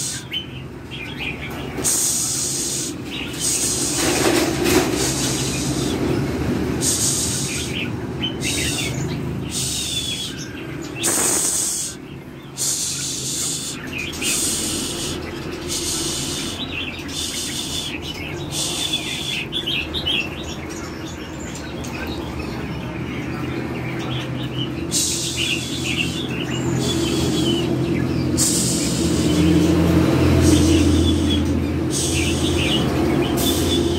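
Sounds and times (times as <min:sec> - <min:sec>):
birds chirping: 0:00.0 - 0:33.9
harsh hissing bursts: 0:01.8 - 0:06.0, 0:06.8 - 0:07.8, 0:08.4 - 0:10.4, 0:11.0 - 0:19.4, 0:24.8 - 0:27.6, 0:28.3 - 0:29.7, 0:30.4 - 0:32.7.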